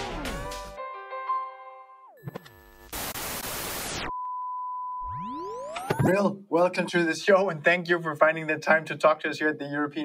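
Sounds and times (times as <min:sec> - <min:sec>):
person speaking: 0:05.9 - 0:10.0.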